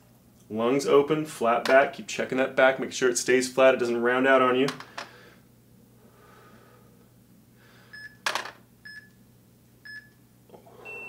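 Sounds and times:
breath-like noise: 4.9 - 8.0.

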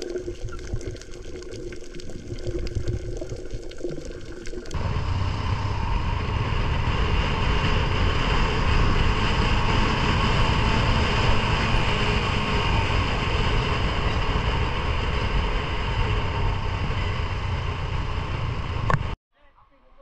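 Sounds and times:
muffled underwater water sound: 0.0 - 5.3
small motorbike running: 4.7 - 19.2
wind rushing: 4.8 - 18.8.

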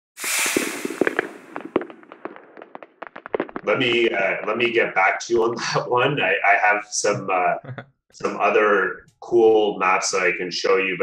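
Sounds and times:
burst of hiss: 0.2 - 1.7
sharp cracks and pops: 0.2 - 4.9.

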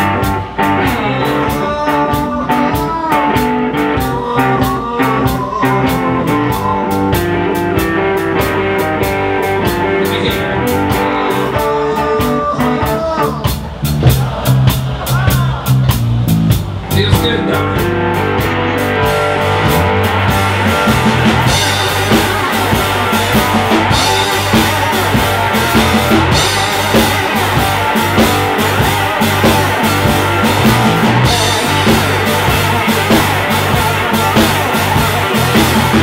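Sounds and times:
bass guitar: 0.0 - 36.0
drum kit beat: 0.0 - 36.0
electric guitar: 0.0 - 36.0
man singing: 0.1 - 14.5, 20.6 - 36.0.

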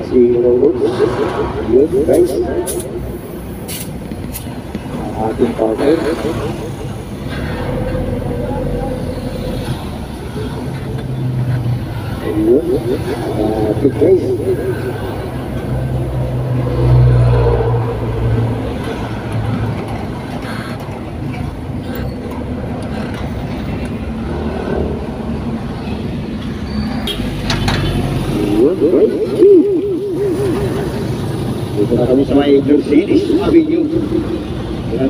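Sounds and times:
car engine and road noise: 0.0 - 35.0
wavering voice: 12.2 - 15.5, 28.4 - 35.0.

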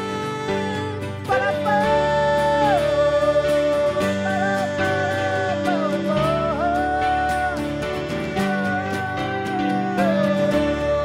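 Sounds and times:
guitar and keyboard chords: 0.0 - 11.0
person singing long held notes: 0.0 - 11.0.

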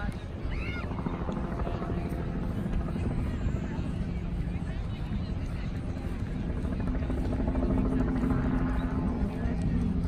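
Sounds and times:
aircraft drone overhead: 0.0 - 10.0
distant voices: 0.0 - 10.0.

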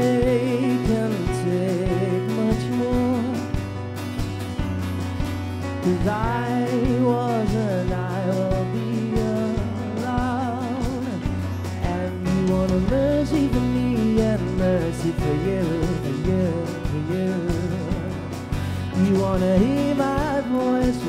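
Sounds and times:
man singing: 0.0 - 3.7, 5.8 - 21.0
drum kit: 0.0 - 21.0
strummed acoustic guitar: 0.0 - 21.0.

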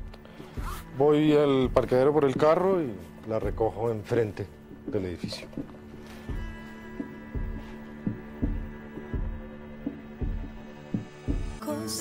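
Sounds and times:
low thumping pulse: 0.0 - 11.7.

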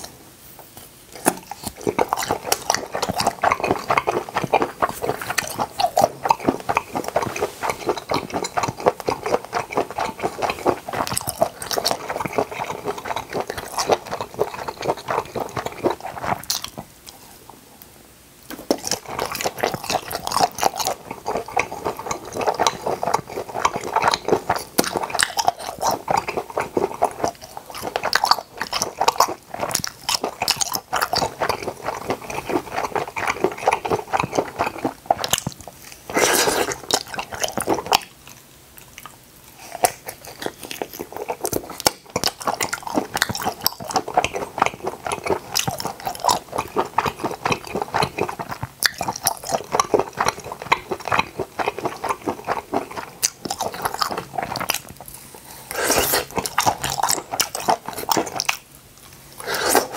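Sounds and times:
wet chewing and smacking: 0.8 - 17.6, 18.4 - 59.9.

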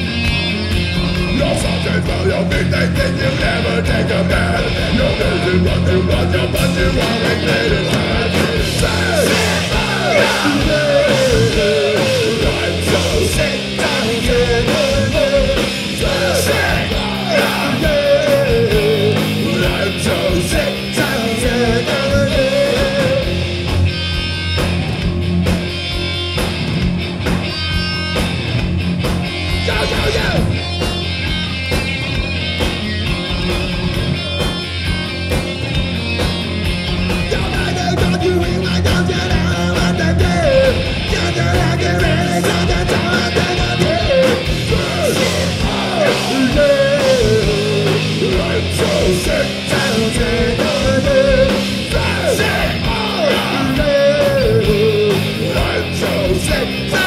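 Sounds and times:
loud punk metal band: 0.0 - 57.0
man shouting vocals: 29.5 - 30.6, 37.3 - 57.0.

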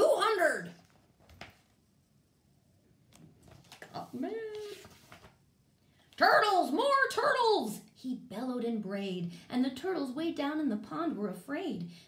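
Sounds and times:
book page turning: 0.7 - 1.8, 3.1 - 5.4.

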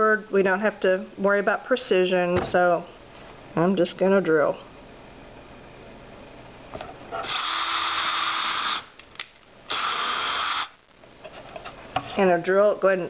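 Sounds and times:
cordless drill boring: 7.2 - 8.9, 9.7 - 10.8.

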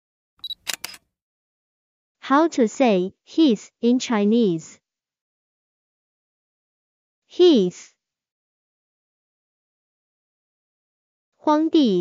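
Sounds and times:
quick sharp clicks: 0.4 - 1.0.

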